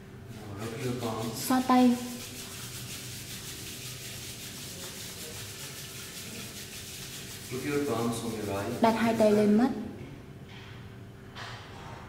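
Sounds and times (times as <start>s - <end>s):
hands rubbing together: 0.3s - 9.6s.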